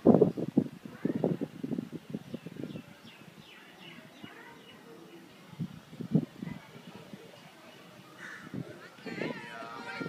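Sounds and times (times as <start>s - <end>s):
distant voices: 2.7s - 10.0s.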